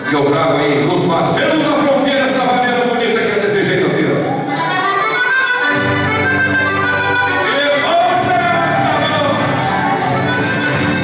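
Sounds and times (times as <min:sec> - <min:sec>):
piano accordion melody: 0:00.0 - 0:03.2, 0:04.4 - 0:11.0
acoustic guitar strumming: 0:04.6 - 0:11.0
bass and rhythm section: 0:04.6 - 0:11.0.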